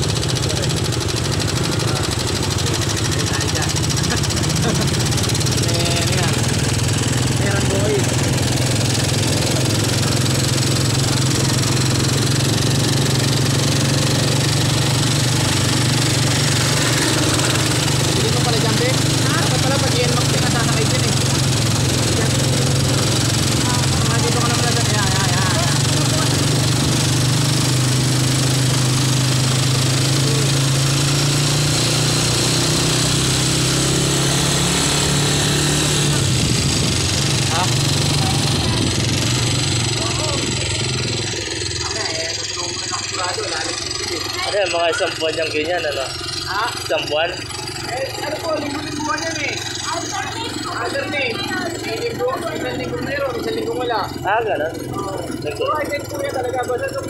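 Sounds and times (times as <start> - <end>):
small engine droning: 0.0 - 57.0.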